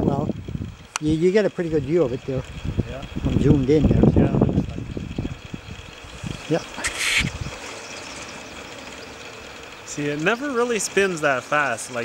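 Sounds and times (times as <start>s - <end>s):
wind: 0.0s - 12.0s
short hiss: 6.2s - 7.8s.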